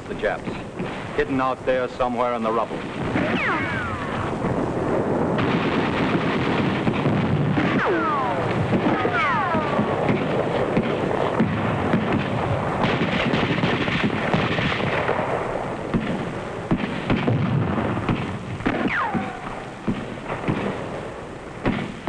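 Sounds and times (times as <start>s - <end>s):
explosions: 0.1s - 22.0s
rifle and machine-gun fire: 2.3s - 22.0s
falling whistling whines: 3.2s - 4.4s.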